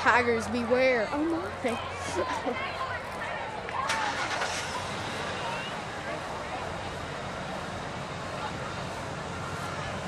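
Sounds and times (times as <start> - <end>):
distant people talking: 0.0 - 10.0
outdoor background noise: 0.0 - 10.0.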